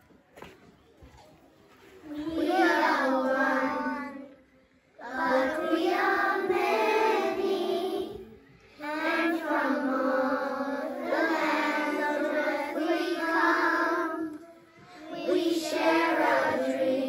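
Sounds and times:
children singing in unison: 0:02.1 - 0:04.4, 0:05.0 - 0:17.0.

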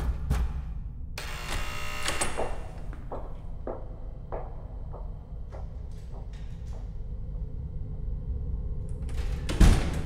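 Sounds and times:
electric buzzing hum: 0:01.2 - 0:05.3
footsteps: 0:02.2 - 0:07.1.

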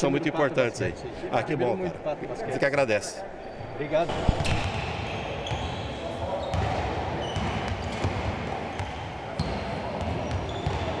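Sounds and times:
sneakers squeaking: 0:03.4 - 0:11.0
basketballs bouncing on court: 0:04.1 - 0:11.0.

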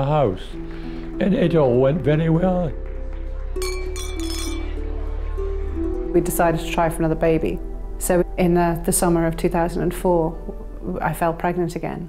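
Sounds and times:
soft background music: 0:00.0 - 0:12.0
wine glasses clinking: 0:03.6 - 0:04.8.

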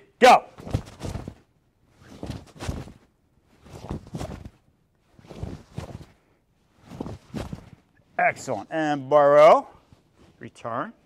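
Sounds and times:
uniform cloth swishing: 0:00.6 - 0:07.9, 0:09.8 - 0:10.4.

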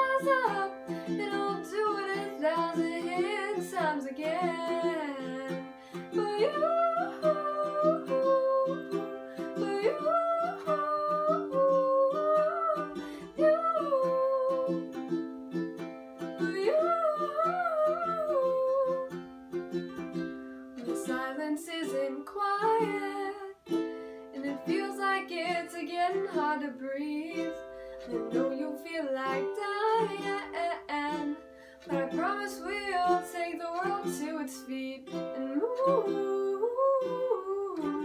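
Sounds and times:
woman singing: 0:00.0 - 0:15.2, 0:16.2 - 0:19.3, 0:20.8 - 0:38.0
ukulele strumming: 0:00.0 - 0:38.0.

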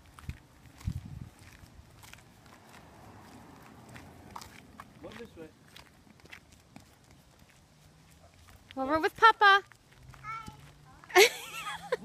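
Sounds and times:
faint footsteps: 0:00.0 - 0:12.0.

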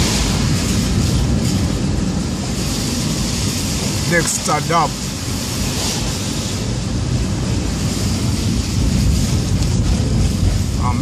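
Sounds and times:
low engine hum: 0:00.0 - 0:11.0
road and tyre noise: 0:00.0 - 0:11.0.

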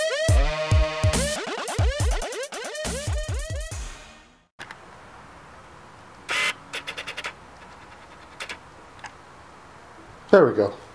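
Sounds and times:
faint room hiss: 0:04.6 - 0:10.9.

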